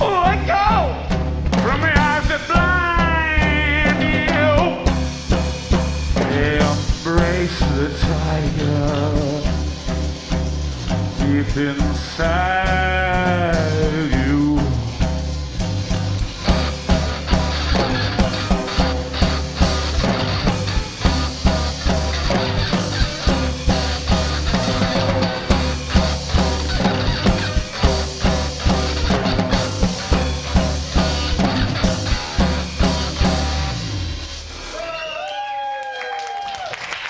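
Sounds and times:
electric bass: 0:00.0 - 0:35.0
drum kit steady beat: 0:00.0 - 0:35.1
electric guitar: 0:01.1 - 0:35.2.

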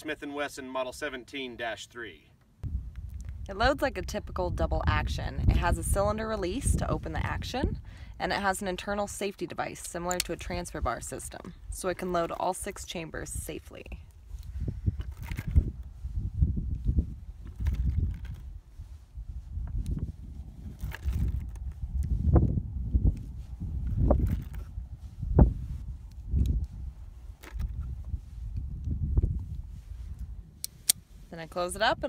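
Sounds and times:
low uneven microphone rumble: 0:02.6 - 0:09.0.

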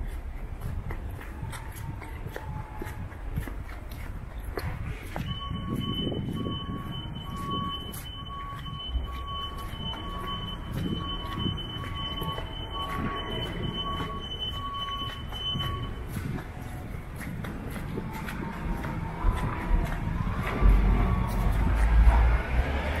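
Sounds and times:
footsteps: 0:00.0 - 0:23.0
street noise: 0:00.0 - 0:23.0
lower repeating beep: 0:05.1 - 0:17.0, 0:17.9 - 0:22.2
steady high alarm tone: 0:05.1 - 0:21.8.

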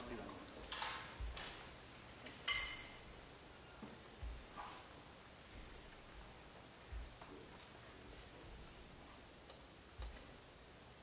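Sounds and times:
bright ringing clink: 0:02.5 - 0:03.0
soft thump: 0:06.9 - 0:07.2.

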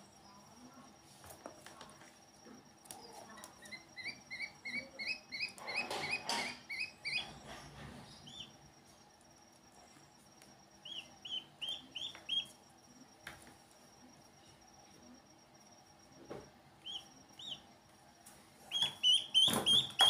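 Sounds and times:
ducklings peeping: 0:03.4 - 0:07.4, 0:08.2 - 0:08.5, 0:10.8 - 0:12.6, 0:16.8 - 0:17.6, 0:18.7 - 0:20.0.

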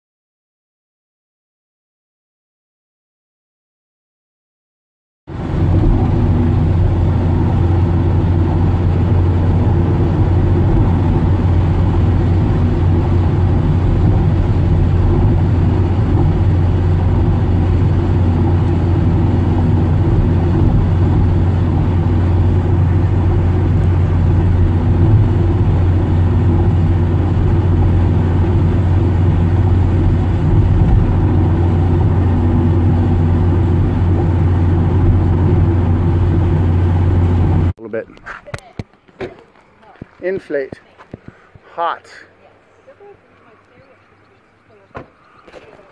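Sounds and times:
car cabin road and engine drone: 0:05.3 - 0:45.9.

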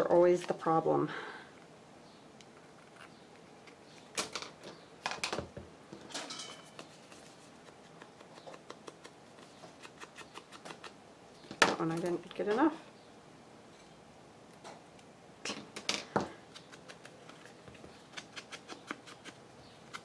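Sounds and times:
person speaking: 0:11.8 - 0:12.9.

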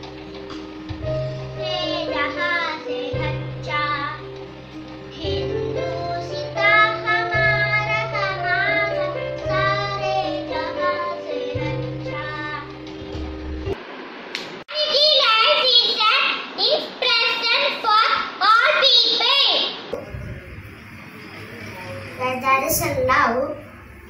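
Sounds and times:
girl singing with vibrato: 0:01.6 - 0:04.3.

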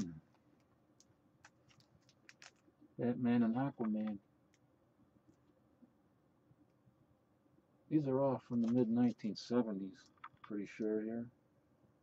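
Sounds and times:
man speaking: 0:00.0 - 0:00.2, 0:03.0 - 0:04.2, 0:07.9 - 0:11.3.

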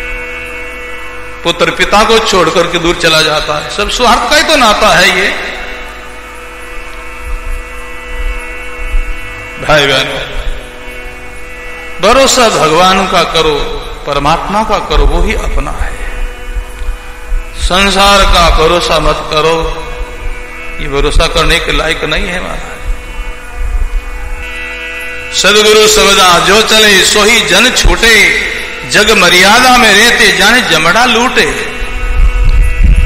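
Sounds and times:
electrical mains hum: 0:00.0 - 0:33.0
sustained instrumental chord: 0:00.0 - 0:33.0.

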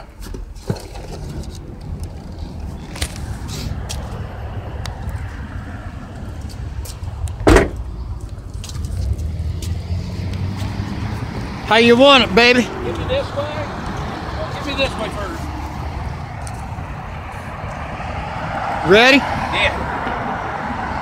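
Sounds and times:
low vehicle rumble: 0:00.5 - 0:21.0
loud thump: 0:07.4 - 0:07.8.

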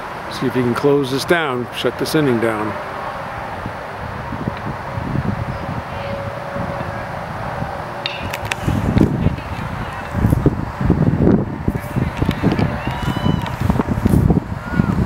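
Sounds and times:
gusty wind rumbles: 0:00.0 - 0:15.0
voices: 0:00.0 - 0:15.0
baseball being hit: 0:08.0 - 0:09.2.

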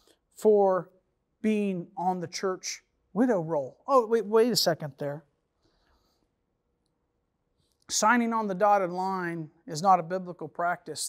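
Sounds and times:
man speaking: 0:00.3 - 0:05.4, 0:07.8 - 0:11.0.

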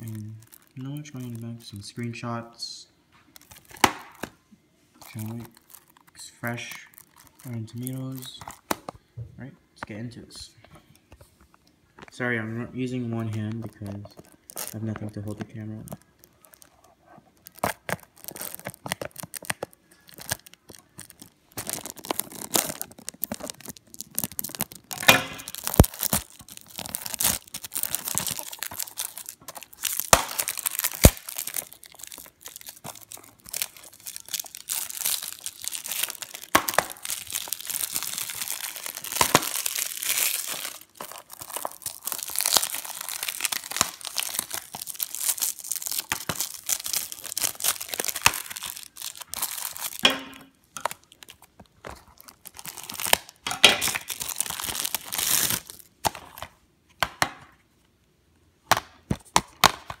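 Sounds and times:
shrink wrap tearing and crinkling: 0:00.0 - 0:02.4, 0:03.3 - 0:04.3, 0:05.0 - 0:08.8, 0:12.8 - 0:56.5.

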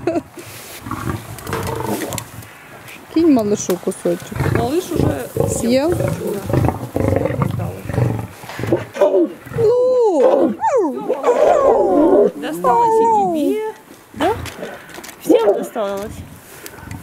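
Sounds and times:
lions growling and snarling: 0:00.8 - 0:02.4, 0:04.1 - 0:13.5, 0:14.1 - 0:17.0.

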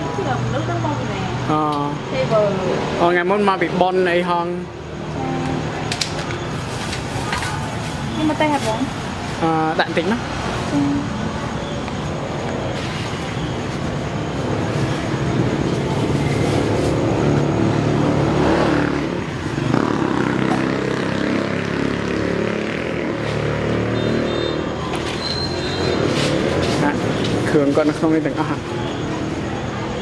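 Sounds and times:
road traffic passing: 0:00.0 - 0:30.0.

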